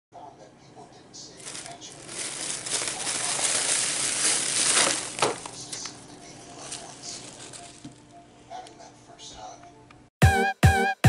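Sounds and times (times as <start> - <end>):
plastic bag rustling: 1.4 - 8.0.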